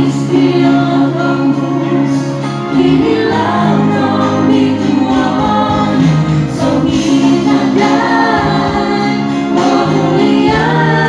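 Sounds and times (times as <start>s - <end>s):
karaoke backing track: 0.0s - 11.0s
woman singing into microphone: 0.0s - 11.0s.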